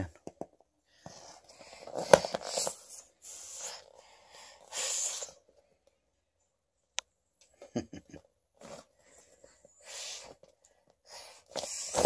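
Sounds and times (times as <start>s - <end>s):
breathy puffs of air: 2.8s - 5.5s.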